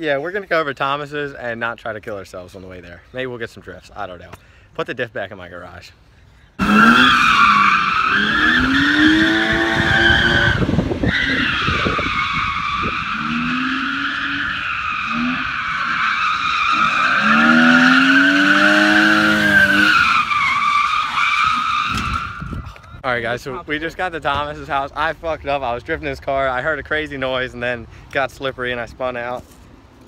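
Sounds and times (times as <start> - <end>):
car engine revving: 6.6 - 21.8
tyres squealing: 6.6 - 22.8.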